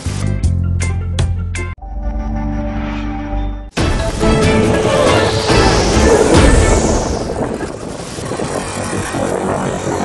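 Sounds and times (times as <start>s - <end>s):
rising whoosh: 1.8s - 8.6s
rough noise bed: 3.8s - 9.6s.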